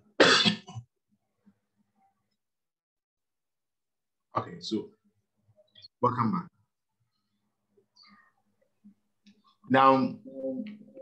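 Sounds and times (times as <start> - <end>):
person coughing: 0.2 - 0.8.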